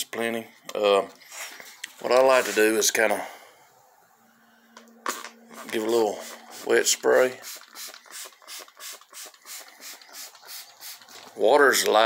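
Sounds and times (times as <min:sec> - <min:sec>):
spray bottle squirting water: 0:05.0 - 0:06.8, 0:07.4 - 0:11.4.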